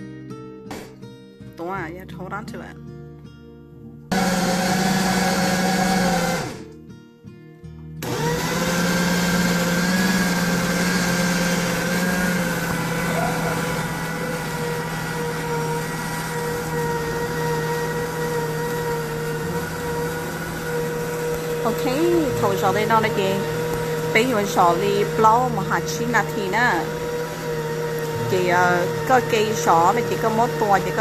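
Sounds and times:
food processor motor grinding: 4.1 - 6.8, 8.0 - 31.0.

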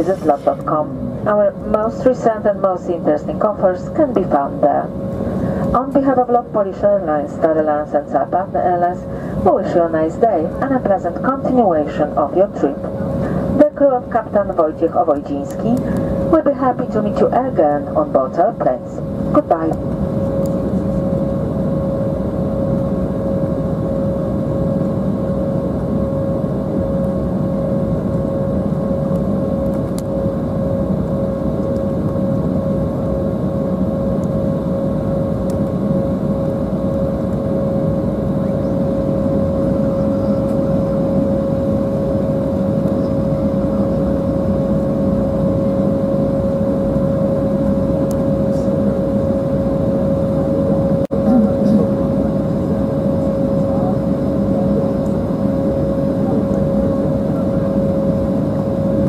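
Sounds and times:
aircraft engines humming: 0.0 - 59.0.

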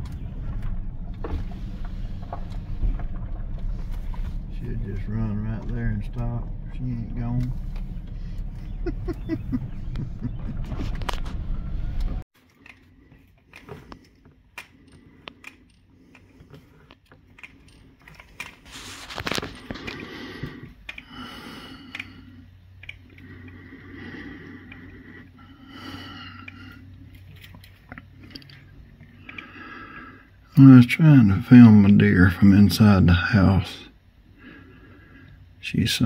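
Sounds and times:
phone being shifted: 16.2 - 20.8
window blinds scraping and clicking: 18.3 - 20.4.

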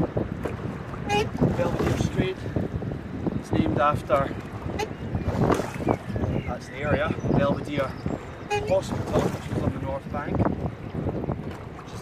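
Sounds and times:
water rushing along hull: 0.0 - 12.0
wind buffeting microphone: 0.0 - 12.0.

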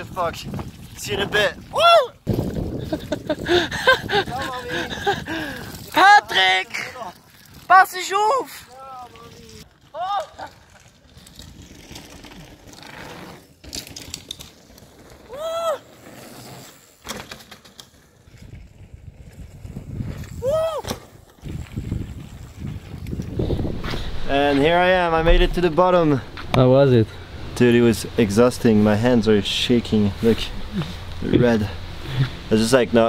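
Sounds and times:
mountain bike rolling on gravel: 0.0 - 33.0
rider whooping shouts: 1.7 - 2.3, 15.3 - 15.8, 20.4 - 20.9.

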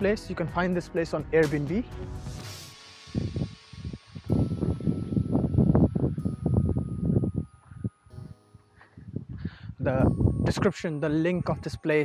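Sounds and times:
faint background music: 0.0 - 12.0
wind buffeting microphone: 3.1 - 10.8.

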